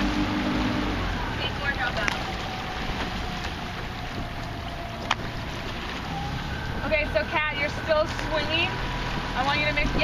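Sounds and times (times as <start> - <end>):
boat motor running: 0.0 - 10.0
wind on microphone: 2.1 - 10.0.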